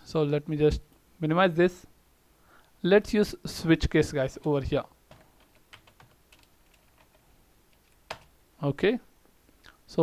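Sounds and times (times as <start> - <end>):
computer keyboard typing: 5.1 - 8.4.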